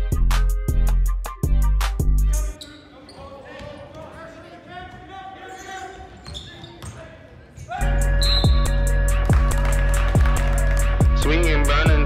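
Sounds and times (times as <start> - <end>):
hip-hop beat with heavy bass: 0.0 - 2.5, 7.9 - 12.0
voices echoing in hall: 2.6 - 8.3.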